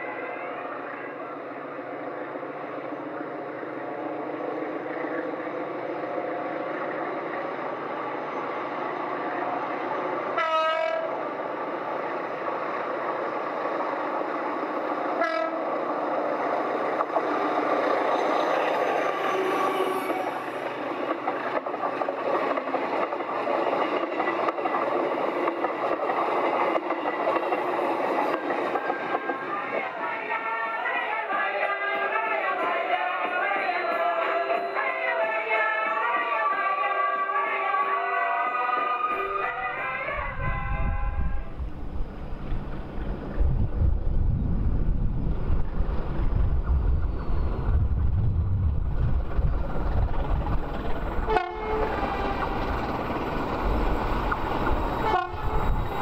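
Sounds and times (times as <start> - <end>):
train wheels on rails: 1.6 - 32.1, 40.8 - 56.0
train horn blasts: 10.3 - 11.2, 15.2 - 15.8, 39.1 - 41.6, 51.2 - 52.5, 55.0 - 56.0.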